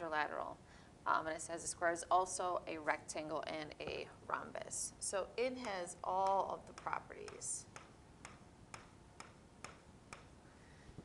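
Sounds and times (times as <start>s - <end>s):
stylus pen tapping on whiteboard: 5.6s - 10.3s.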